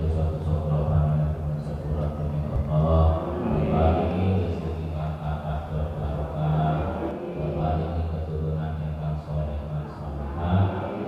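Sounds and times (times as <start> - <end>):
low male voices chanting: 2.0 - 5.1.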